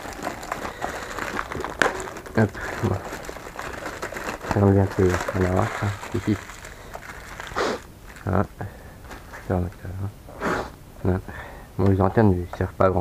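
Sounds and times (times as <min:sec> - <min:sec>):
plastic packaging crinkling: 0:00.0 - 0:09.6.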